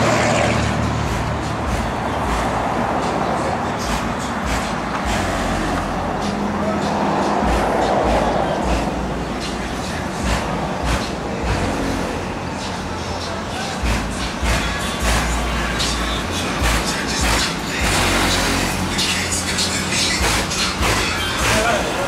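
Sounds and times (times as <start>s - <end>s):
cars running: 0.0s - 22.0s
music with deep bass: 0.0s - 22.0s
distant people talking: 5.8s - 18.0s.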